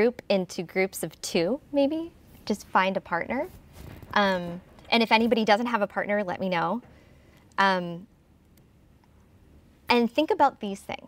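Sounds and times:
woman speaking: 0.0s - 3.6s, 4.2s - 6.8s, 7.6s - 8.1s, 9.9s - 11.0s.

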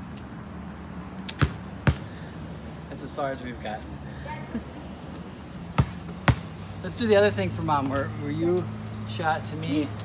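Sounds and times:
basketball bouncing on asphalt: 1.2s - 2.2s, 5.6s - 6.7s.

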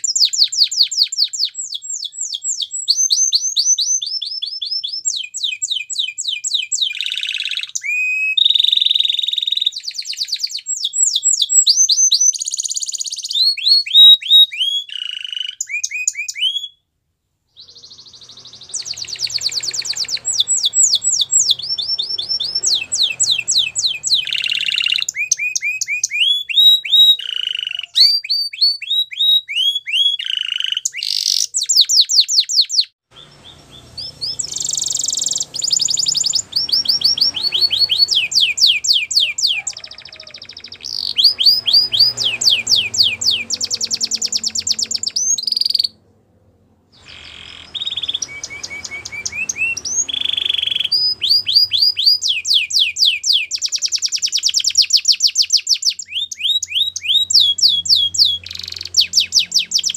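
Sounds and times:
canary singing: 0.0s - 16.8s, 17.6s - 46.2s, 46.9s - 59.9s.

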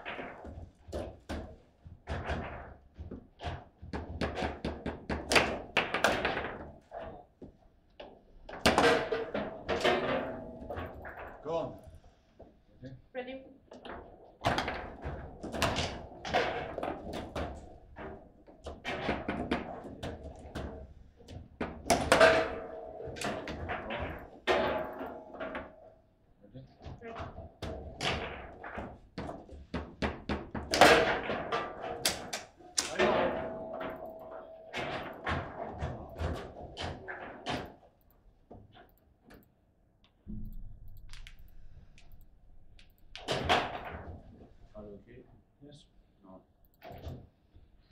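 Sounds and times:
ball clacking against plastic figures: 0.0s - 12.0s, 13.7s - 25.9s, 26.9s - 44.2s.

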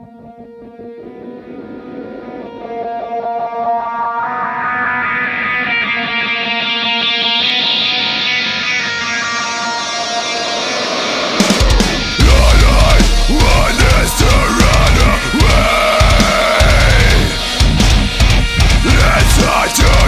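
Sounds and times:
picked ringing guitar notes: 0.0s - 20.0s.

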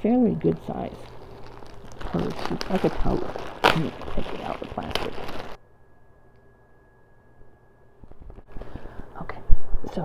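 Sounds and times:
canvas bag rustling: 0.7s - 5.6s.

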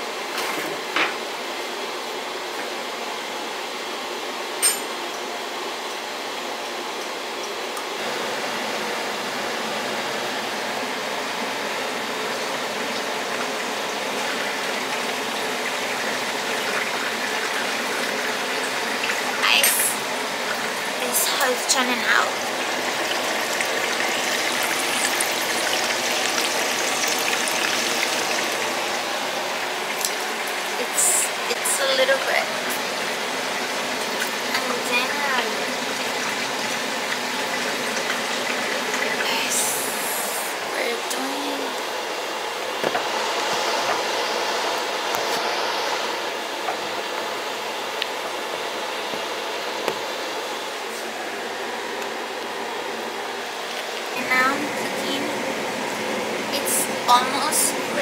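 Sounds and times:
food sizzling on stovetop: 0.0s - 58.0s.

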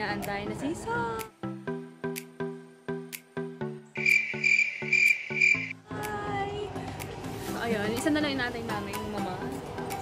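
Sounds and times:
light background music: 0.0s - 10.0s
cricket chirping: 4.0s - 5.7s.

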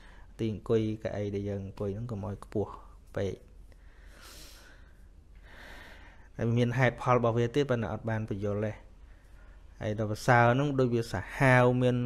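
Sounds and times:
man breathing: 0.0s - 0.4s, 3.7s - 6.4s, 9.0s - 9.7s.

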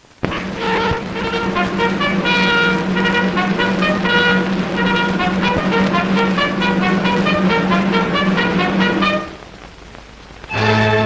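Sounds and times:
brass playing quick run: 0.2s - 9.4s, 10.5s - 11.0s
held low orchestral note: 0.2s - 9.4s, 10.5s - 11.0s.

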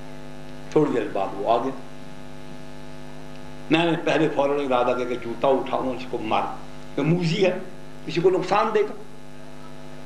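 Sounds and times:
electrical mains hum: 0.0s - 10.0s
man speaking: 0.7s - 1.9s, 3.7s - 9.1s.

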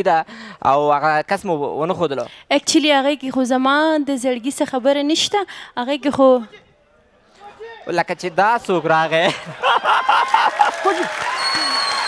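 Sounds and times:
studio audience applauding: 9.6s - 12.0s.

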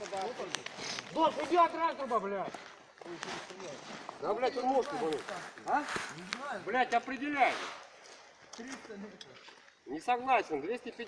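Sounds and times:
men's voices murmuring: 0.0s - 11.0s.

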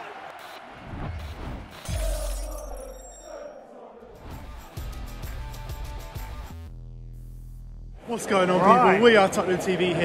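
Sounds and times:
music with a steady beat: 4.3s - 7.9s.

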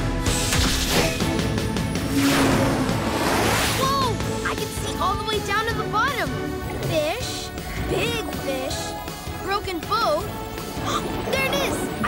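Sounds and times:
cartoon soundtrack music: 0.0s - 12.0s
whooshing power-up effect: 2.1s - 4.0s.

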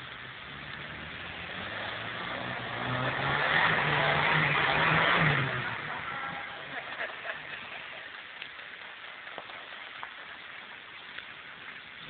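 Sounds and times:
car engine pulling hard: 0.0s - 8.0s.

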